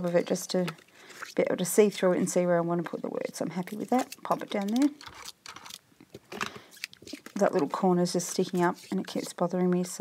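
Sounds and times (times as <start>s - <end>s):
paper and card rustling: 2.8s - 9.5s.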